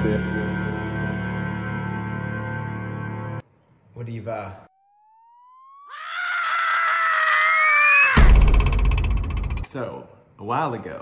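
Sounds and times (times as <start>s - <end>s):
rising pitch sweep: 4.8s - 5.9s
long held scream: 5.8s - 8.4s.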